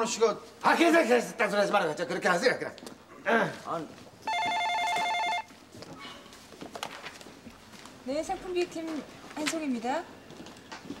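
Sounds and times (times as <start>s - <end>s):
desk telephone ringing: 4.3s - 5.5s.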